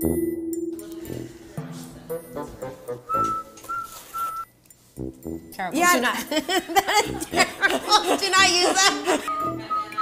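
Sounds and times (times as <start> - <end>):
short whistled notes: 3.0 - 4.5.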